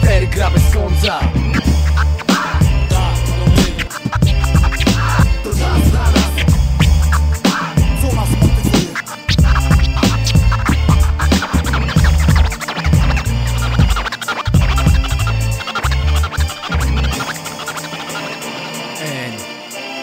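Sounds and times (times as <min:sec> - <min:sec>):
heavy bass line: 0:00.0 - 0:19.5
hip hop beat: 0:00.0 - 0:20.0
turntable scratching: 0:00.0 - 0:20.0.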